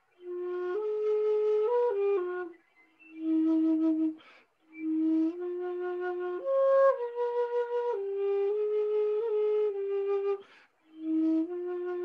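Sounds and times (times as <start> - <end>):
wooden flute playing slow melody: 0.1 - 12.0
flute player breathing: 4.0 - 4.8, 10.2 - 11.0.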